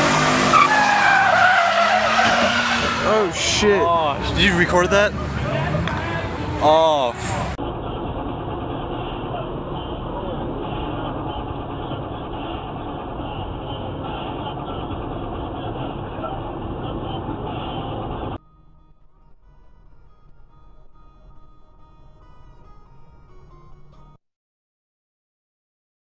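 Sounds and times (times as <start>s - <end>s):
car road and engine noise: 0.0s - 24.2s
faint steady tones: 18.4s - 24.2s.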